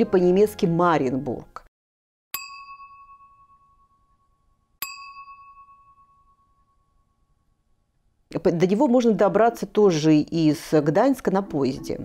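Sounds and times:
bell-like ding: 0:02.3 - 0:07.6.

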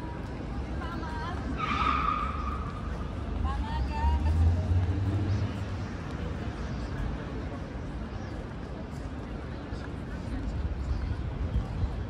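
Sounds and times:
passing vehicle engine rumble: 0:00.0 - 0:07.7.

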